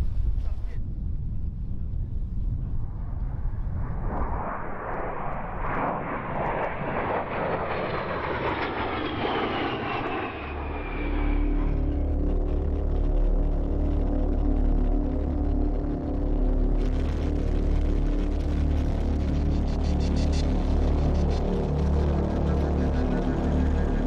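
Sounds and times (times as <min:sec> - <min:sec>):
jet aircraft passing overhead: 0:00.7 - 0:24.0
steady low hum: 0:10.7 - 0:24.0.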